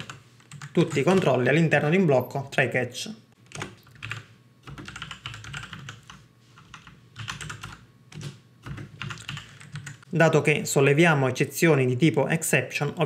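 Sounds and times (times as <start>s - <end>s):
typing on computer keyboard: 0.0s - 1.3s, 3.5s - 10.0s.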